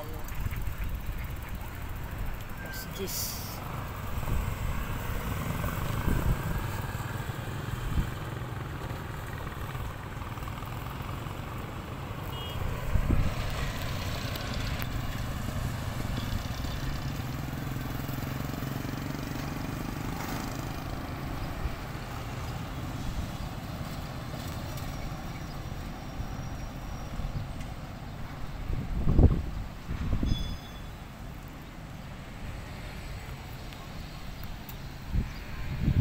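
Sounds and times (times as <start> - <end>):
traffic engine rumble: 0.0 - 36.0.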